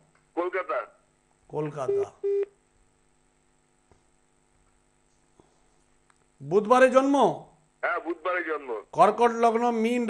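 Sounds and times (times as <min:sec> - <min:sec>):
telephone line hum: 0:01.6 - 0:02.6
electronic telephone beep: 0:01.9 - 0:02.5.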